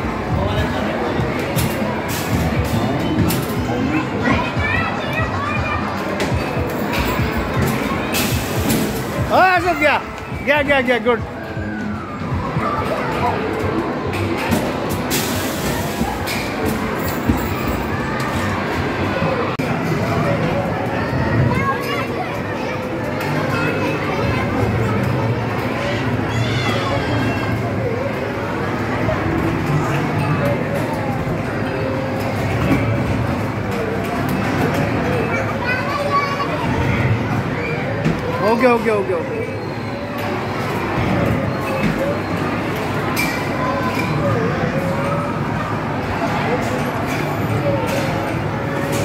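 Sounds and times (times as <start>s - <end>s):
arcade racing game sounds: 0.0s - 35.6s
children's voices chattering: 0.0s - 49.0s
noisy background: 0.0s - 49.0s.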